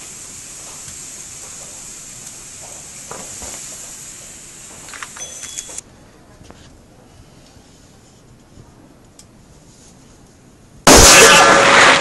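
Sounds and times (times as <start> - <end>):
plastic bottle bursting bang: 10.9 - 12.0.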